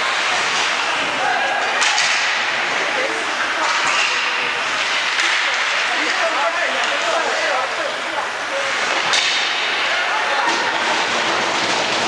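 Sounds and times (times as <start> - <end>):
arena noise: 0.0 - 12.0
voices of players and spectators: 0.0 - 12.0.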